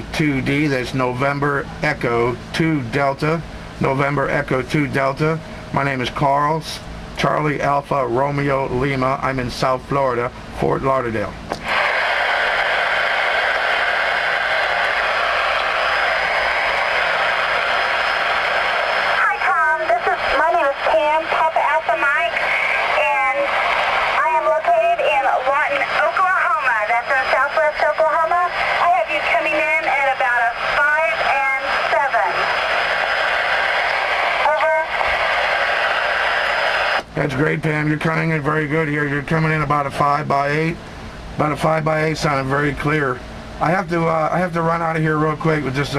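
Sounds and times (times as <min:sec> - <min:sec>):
radio static hiss: 0:11.5 - 0:40.8
distant voice over radio: 0:19.2 - 0:23.6, 0:24.2 - 0:32.6, 0:34.4 - 0:35.1.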